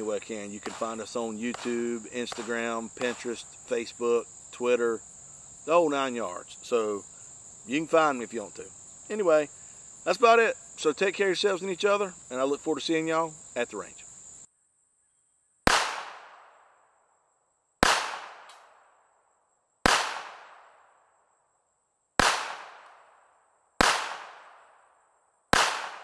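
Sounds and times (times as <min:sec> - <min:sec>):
high insect drone: 0:00.0 - 0:15.7
pistol shots echoing: 0:00.6 - 0:03.4, 0:15.7 - 0:16.5, 0:17.8 - 0:18.5, 0:19.9 - 0:20.7, 0:22.2 - 0:23.0, 0:23.8 - 0:24.6, 0:25.5 - 0:26.0.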